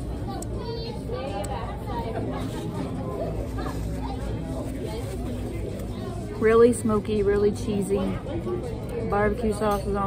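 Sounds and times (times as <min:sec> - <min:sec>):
indistinct talk: 0:00.0 - 0:10.0
low background noise: 0:00.0 - 0:10.0.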